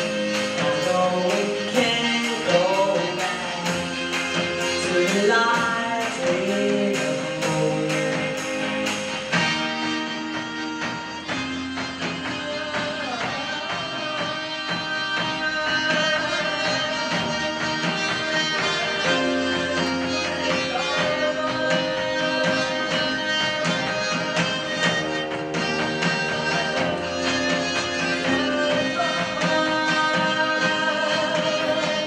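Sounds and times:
live band playing: 0.0 - 32.0
steady drum beat: 0.0 - 32.0.

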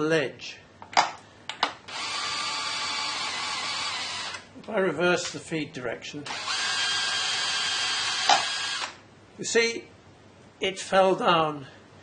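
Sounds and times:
cordless drill whining: 1.9 - 4.5, 6.3 - 9.0.

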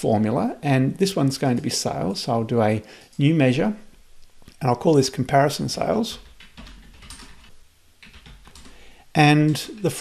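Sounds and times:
computer keyboard typing: 6.1 - 8.8.

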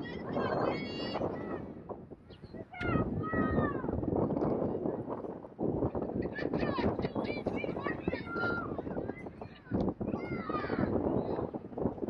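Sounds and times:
people shouting on sports field: 10.1 - 11.0.

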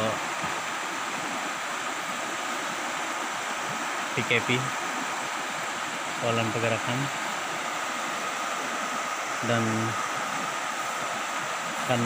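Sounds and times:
floodwater rushing: 0.0 - 12.0.

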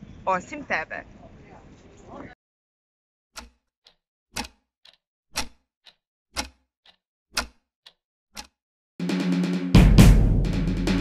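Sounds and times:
clock ticking: 3.4 - 8.6.

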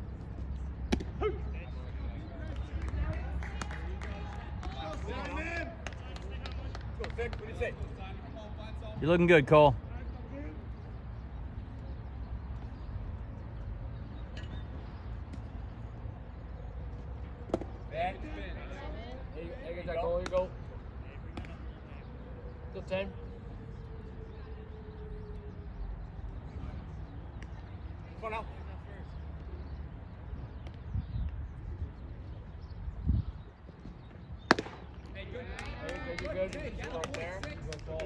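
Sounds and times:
sharp claps: 2.4 - 7.6, 34.5 - 38.0.

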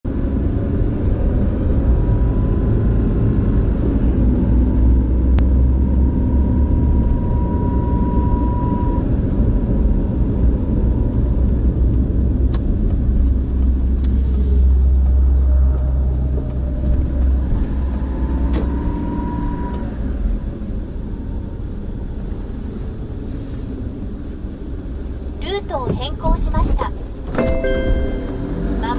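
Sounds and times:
car engine and road noise: 0.0 - 28.9.

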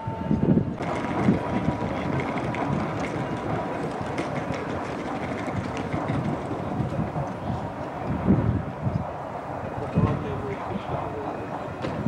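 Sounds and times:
railcar rumbling rattle: 0.0 - 12.0.

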